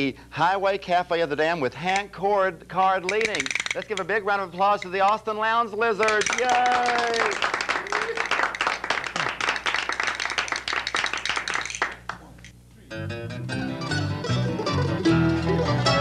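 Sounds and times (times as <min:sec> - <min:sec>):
applause: 0:06.0 - 0:12.2
bluegrass string band playing: 0:12.9 - 0:16.0.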